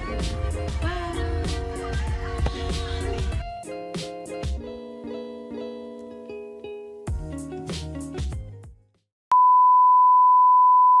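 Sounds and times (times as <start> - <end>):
steady pure test tone beep: 9.3 - 11.0.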